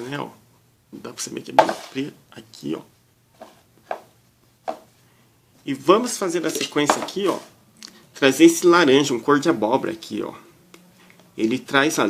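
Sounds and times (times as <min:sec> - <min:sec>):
plastic cups knocking on table: 0:01.6 - 0:02.0, 0:03.4 - 0:04.1, 0:04.7 - 0:04.9, 0:06.5 - 0:07.5.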